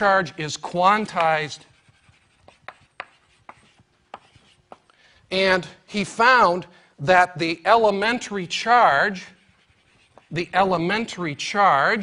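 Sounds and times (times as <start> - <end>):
chalk scratching: 0.0 - 4.9, 7.8 - 12.0
chalk tapping on blackboard: 0.9 - 4.9, 9.1 - 11.1.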